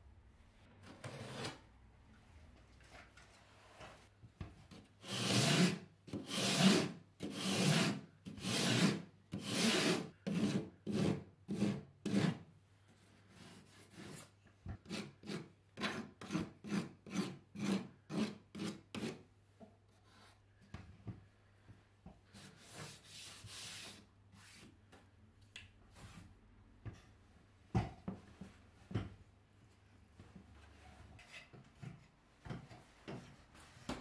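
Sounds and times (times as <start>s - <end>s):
rasp scraping plasterboard: 1.0s - 1.6s, 4.7s - 12.4s, 13.3s - 19.2s, 22.3s - 24.7s.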